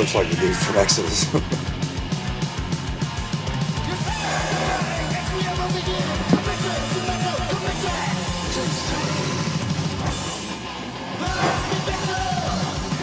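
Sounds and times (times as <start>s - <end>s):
speed metal song: 0.0s - 13.0s.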